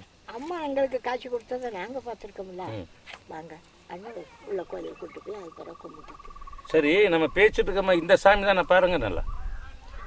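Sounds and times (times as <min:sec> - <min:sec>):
quiet conversational speech: 0:00.0 - 0:10.0.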